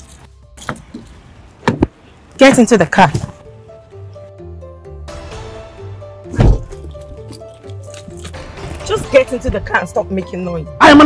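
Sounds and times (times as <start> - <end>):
faint background music: 2.2 - 11.0.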